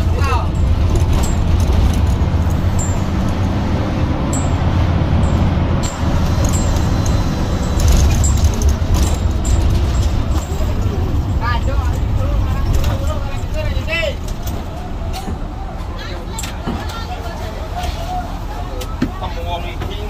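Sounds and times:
bus diesel engine droning: 0.0s - 20.0s.

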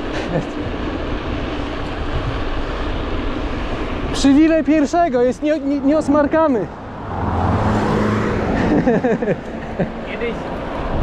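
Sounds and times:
bike tyres rolling on asphalt: 0.0s - 11.0s
wind noise on microphone: 0.7s - 4.6s, 10.6s - 11.0s.

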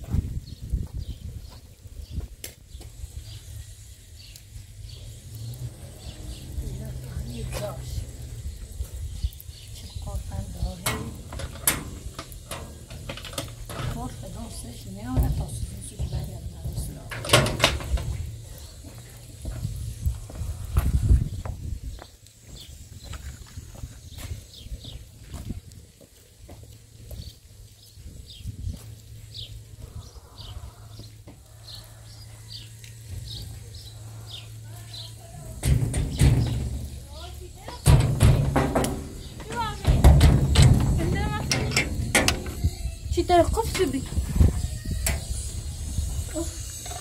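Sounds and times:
wind rumble on microphone: 0.0s - 26.0s, 27.0s - 31.8s, 37.8s - 47.0s
metal gate rattling and clanking: 10.6s - 18.3s, 35.4s - 47.0s
footsteps on muddy lane: 18.1s - 29.5s
metal chain and latch clanking: 37.9s - 42.7s.

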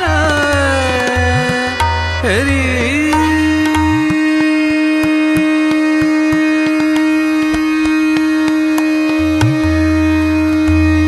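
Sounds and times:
tabla drum strokes: 0.0s - 11.0s.

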